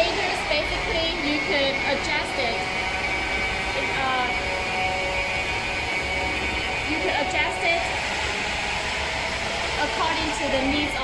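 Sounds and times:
machinery humming with high whine: 0.0 - 11.0.

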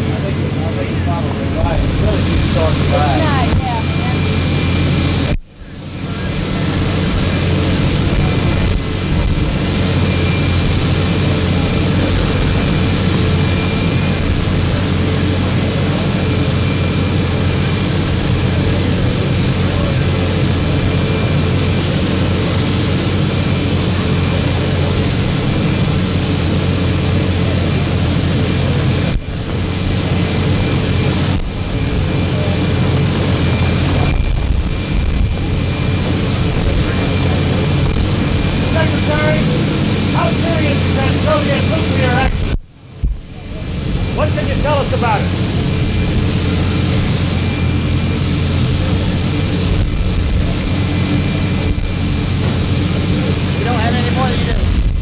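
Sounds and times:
jet engines running: 0.0 - 55.0.

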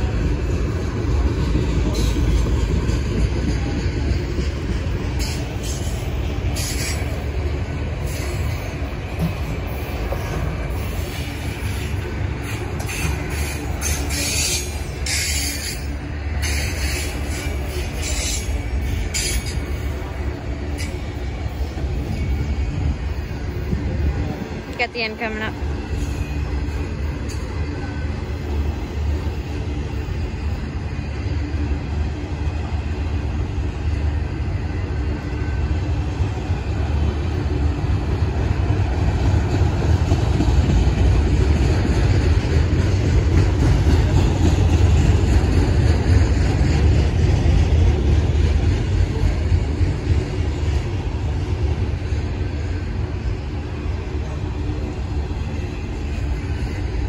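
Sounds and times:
freight cars rumbling on rails: 0.0 - 57.0.

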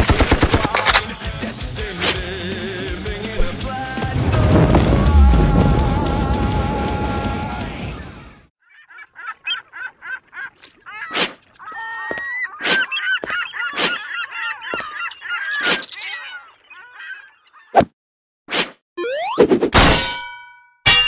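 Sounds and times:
sharp cartoon hit sounds: 19.0 - 20.2.

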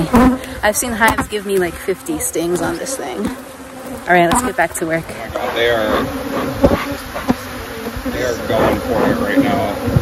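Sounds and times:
bees buzzing: 0.0 - 10.0
sharp taps: 0.2 - 2.2.

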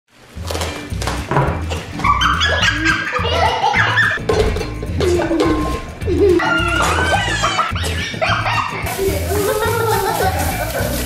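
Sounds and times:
background music with low beat: 0.3 - 11.0.

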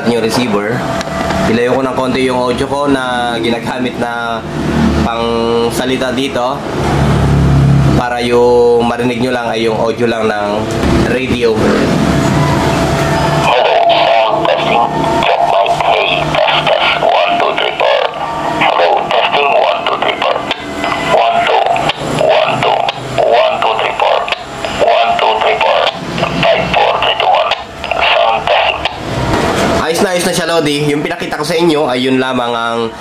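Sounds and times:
tinny music through radio speaker: 13.4 - 29.0.

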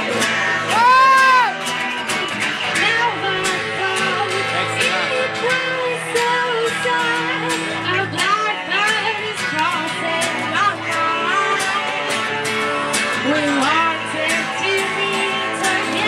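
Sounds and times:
harmonica lead line: 0.0 - 16.0
strummed guitars: 0.0 - 16.0.

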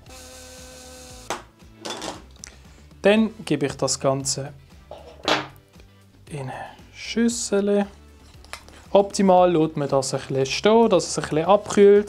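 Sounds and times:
electric spice grinder running: 0.0 - 1.4.

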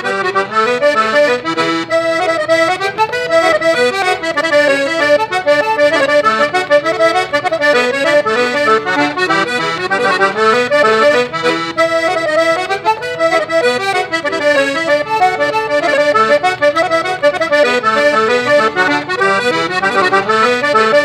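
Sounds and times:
button accordion playing reel: 0.0 - 21.0.

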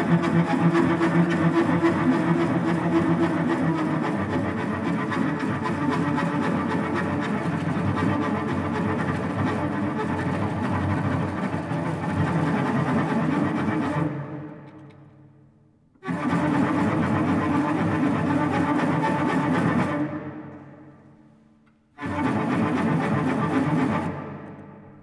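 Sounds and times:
bowed cello: 0.0 - 15.2, 16.0 - 25.0.

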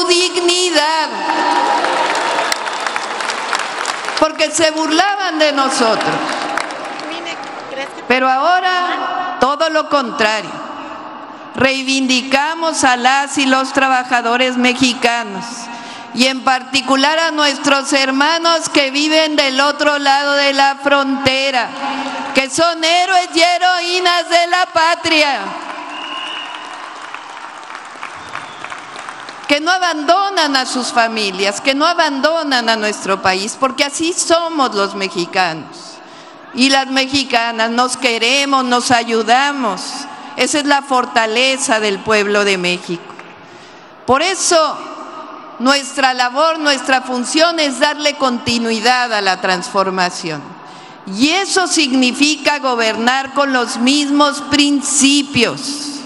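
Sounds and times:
audience applauding: 1.2 - 4.4, 5.8 - 8.0, 25.6 - 29.5
thin high whistle: 25.9 - 26.7.

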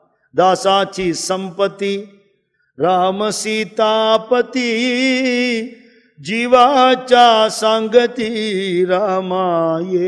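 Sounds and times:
man chanting: 0.1 - 10.0.

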